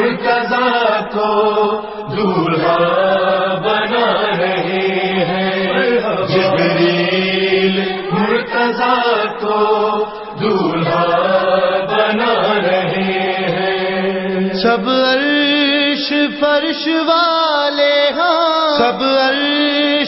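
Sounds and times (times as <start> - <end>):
voices chanting a devotional song: 0.0 - 20.0.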